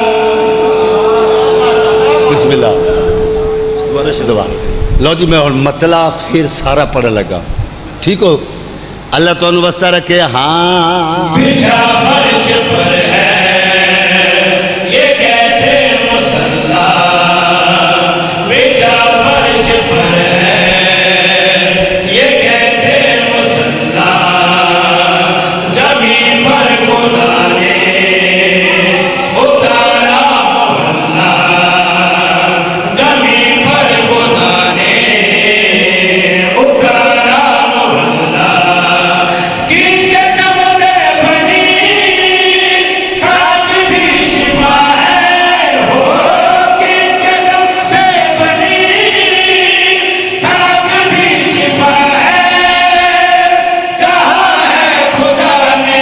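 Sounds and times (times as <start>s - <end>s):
men singing devotional verses: 0.0s - 7.4s, 8.9s - 56.0s.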